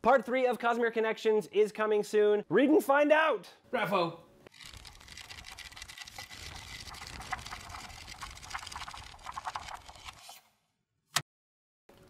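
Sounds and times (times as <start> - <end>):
book pages flipping: 4.5 - 10.5.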